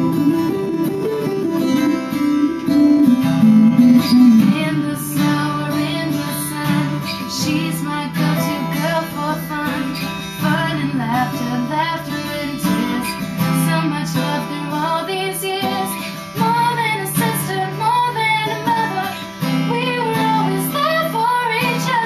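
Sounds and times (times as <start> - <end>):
electric guitar playing: 0.0 - 13.9
acoustic guitar strumming: 0.0 - 22.0
woman singing: 3.2 - 22.0.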